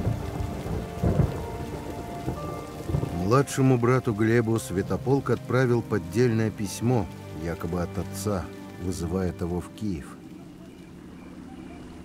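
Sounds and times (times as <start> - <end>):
rolling thunder rumble: 0.0 - 7.7
steady rain: 0.0 - 12.0.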